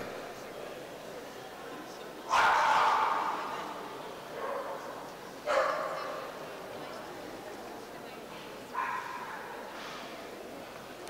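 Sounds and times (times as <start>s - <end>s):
dog barking in a hall: 2.3s - 6.4s, 8.6s - 9.8s.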